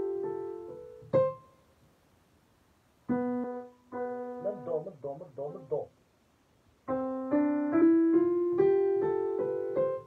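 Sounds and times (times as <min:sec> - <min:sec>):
digital piano note: 0:03.1 - 0:05.9
man speaking: 0:04.4 - 0:06.0.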